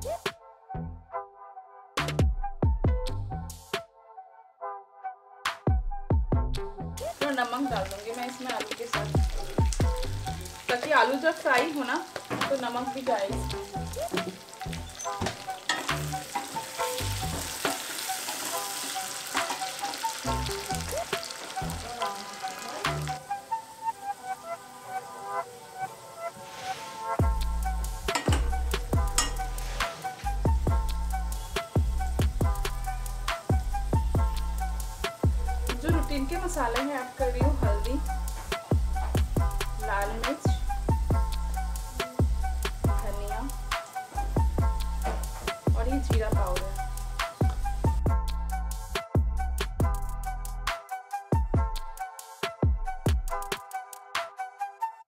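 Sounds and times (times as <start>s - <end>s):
background music: 0.0s - 55.0s
potatoes sizzling in oil: 7.0s - 48.0s
heavy bass beat: 30.5s - 36.3s, 37.4s - 39.8s, 40.7s - 50.5s.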